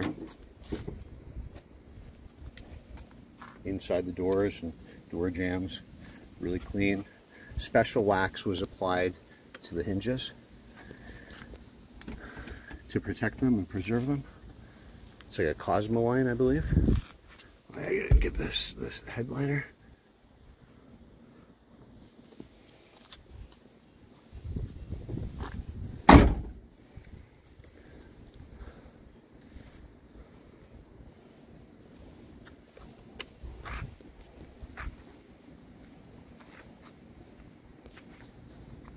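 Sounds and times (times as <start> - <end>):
person speaking: 17.7 - 19.8.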